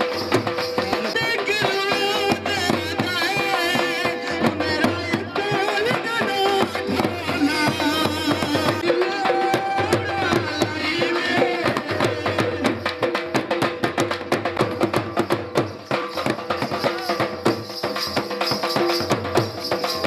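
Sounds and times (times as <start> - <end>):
drums beaten in fast rhythm: 0.0 - 20.0.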